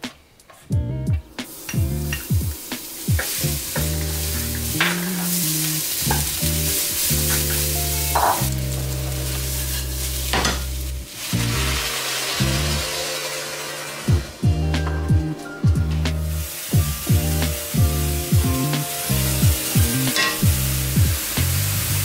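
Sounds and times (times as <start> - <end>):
background music with bass line: 0.7 - 13.2, 14.1 - 22.0
rice sizzling in hot oil: 1.4 - 14.5, 16.2 - 22.0.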